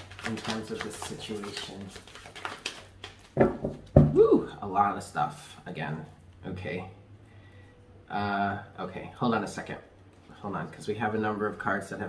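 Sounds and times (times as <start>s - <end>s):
cards being shuffled: 0.0s - 3.8s
cards thumping: 0.0s - 4.2s.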